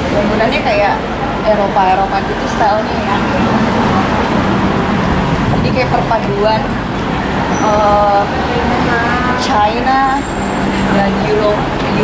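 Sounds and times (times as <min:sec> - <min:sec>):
people talking: 0:00.0 - 0:12.0
road traffic: 0:00.0 - 0:12.0.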